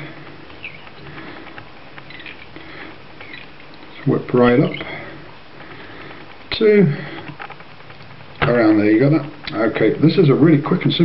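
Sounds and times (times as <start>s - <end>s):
thread rustling and scratching: 0.0s - 10.6s
low background hiss: 0.0s - 11.0s.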